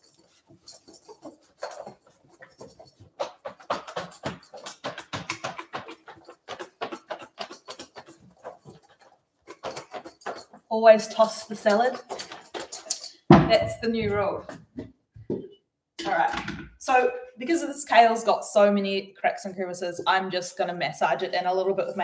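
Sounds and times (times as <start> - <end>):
salad shaken in metal bowl: 0.0 - 13.3.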